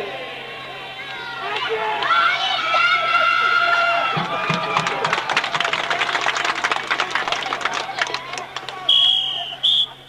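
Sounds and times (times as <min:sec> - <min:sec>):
crowd clapping: 0:03.4 - 0:09.5.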